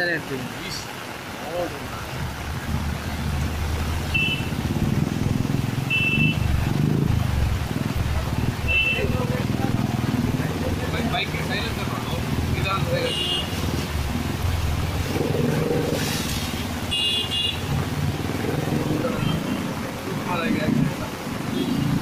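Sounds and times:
vehicle engines rumbling: 0:00.0 - 0:22.0
vehicles driving through water: 0:00.0 - 0:22.0
car horn toots: 0:04.2 - 0:04.6, 0:05.9 - 0:06.5, 0:16.9 - 0:17.7.

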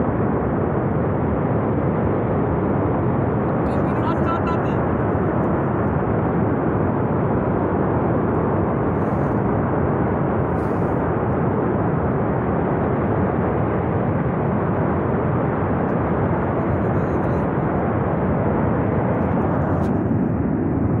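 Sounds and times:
flash flood rushing rumble: 0:00.0 - 0:21.0.

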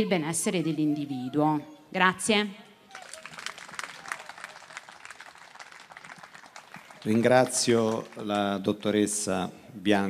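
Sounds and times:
audience applauding: 0:02.9 - 0:09.2.

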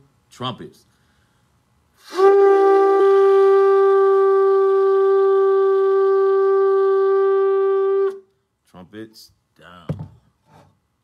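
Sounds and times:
shofar blast: 0:02.0 - 0:08.3.

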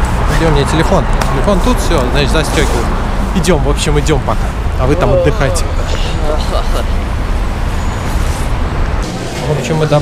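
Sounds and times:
street traffic rumble: 0:00.0 - 0:10.0
faint voices: 0:01.3 - 0:07.0.

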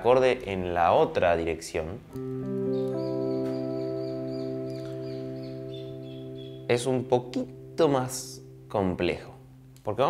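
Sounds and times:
electric guitar arpeggiated chord: 0:02.2 - 0:09.8.

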